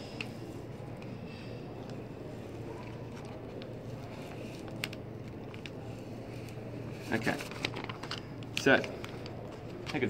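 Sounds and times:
low background hum: 0:00.0 - 0:10.0
paper and tape rustling: 0:01.9 - 0:10.0.

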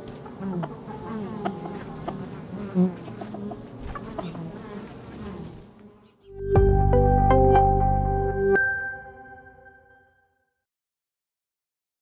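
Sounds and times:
honeybees buzzing: 0:00.0 - 0:06.6
music with deep bass note: 0:06.3 - 0:08.6.

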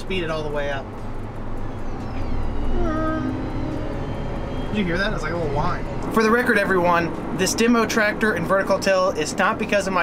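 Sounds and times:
steady whining tones: 0:00.0 - 0:10.0
tractor engine drone: 0:00.0 - 0:10.0.

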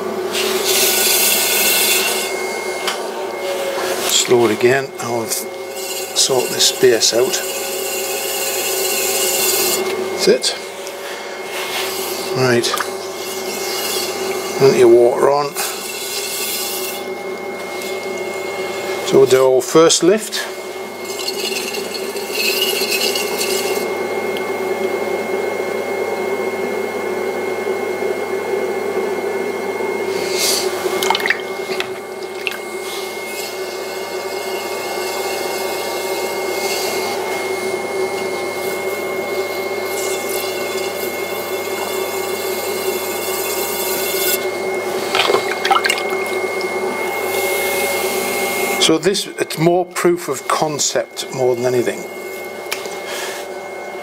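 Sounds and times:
potter's wheel whine: 0:00.0 - 0:54.0.

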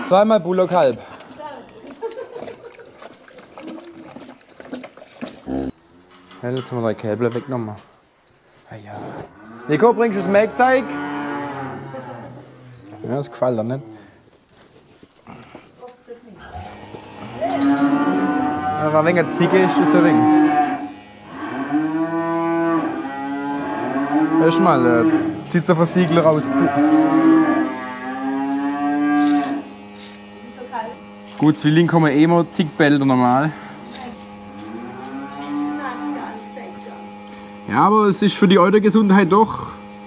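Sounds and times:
cow mooing: 0:05.4 - 0:06.4, 0:09.3 - 0:14.1, 0:16.4 - 0:30.5, 0:33.3 - 0:36.9
steady electrical hum: 0:05.4 - 0:40.0.

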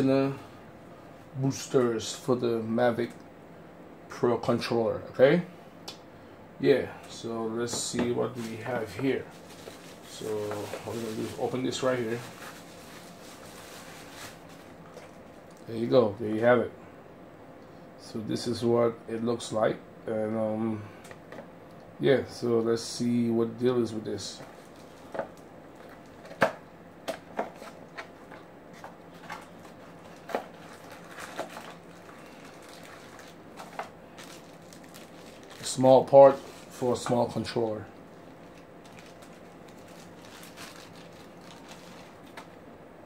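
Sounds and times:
bubble-wrap bag rustling: 0:07.8 - 0:15.6, 0:24.3 - 0:26.4, 0:27.4 - 0:42.6
plastic packaging crinkling: 0:07.8 - 0:15.7, 0:24.3 - 0:42.6.

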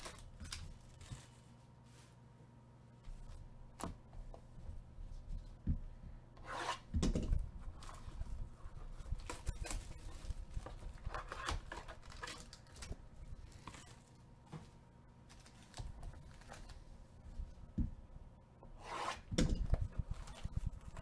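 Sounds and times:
plastic wrap and cardboard crackling: 0:00.0 - 0:02.4, 0:07.7 - 0:14.3, 0:15.2 - 0:16.9.

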